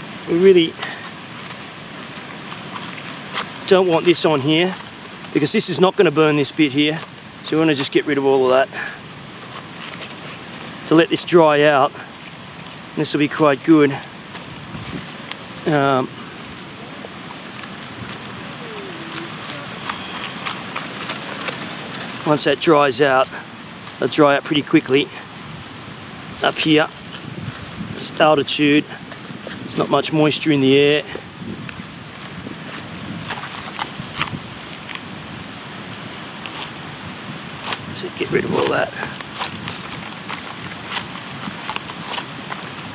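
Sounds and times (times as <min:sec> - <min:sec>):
wind noise on microphone: 0:00.0 - 0:42.9
fingers scraping wet bark: 0:00.4 - 0:25.7, 0:30.9 - 0:35.1, 0:37.4 - 0:42.9.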